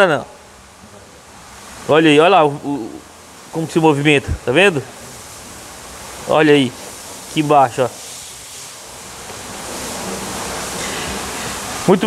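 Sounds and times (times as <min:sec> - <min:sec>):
steady rushing noise: 0:03.4 - 0:12.0.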